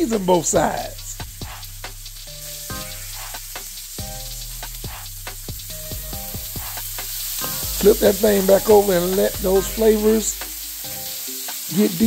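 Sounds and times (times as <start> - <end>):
background music: 0.0 - 12.0
burger patties sizzling: 0.0 - 12.0
grease popping: 0.0 - 12.0.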